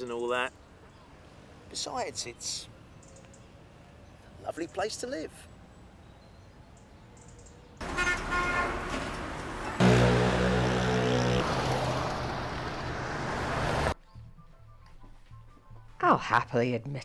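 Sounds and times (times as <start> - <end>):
passing traffic: 5.4 - 14.0
short high car horn toots: 7.8 - 8.8
long low horn blast: 9.8 - 12.4.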